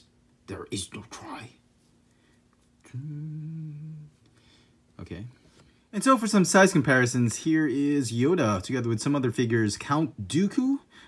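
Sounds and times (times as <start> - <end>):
man humming: 2.8 - 4.2.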